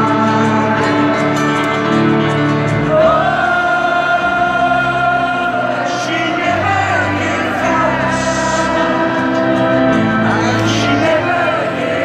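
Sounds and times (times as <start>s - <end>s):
crowd singing along: 0.0s - 12.0s
live band playing slow ballad: 0.0s - 12.0s.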